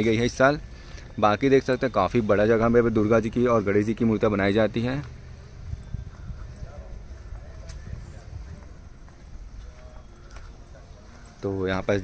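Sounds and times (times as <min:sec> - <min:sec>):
faint voices: 0:00.0 - 0:12.0
footsteps on bare ground: 0:06.0 - 0:12.0.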